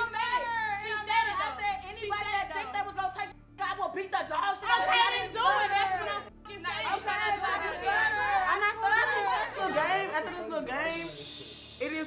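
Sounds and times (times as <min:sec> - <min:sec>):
women arguing: 0:00.0 - 0:11.0.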